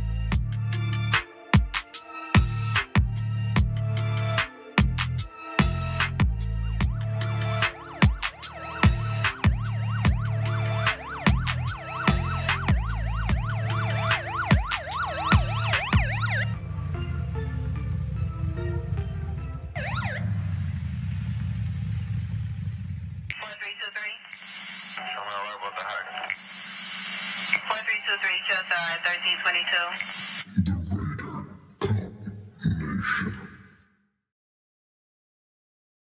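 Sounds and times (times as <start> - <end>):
music with deep bass drum: 0.0 - 20.0
police siren yelping: 6.9 - 20.6
low hum: 8.7 - 23.4
voice chatter over two-way radio: 23.3 - 26.4, 27.4 - 33.5
radio static hiss: 23.3 - 30.5.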